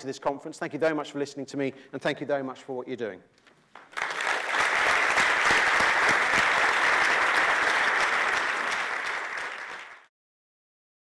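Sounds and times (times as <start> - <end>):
audience applauding: 3.8 - 10.1.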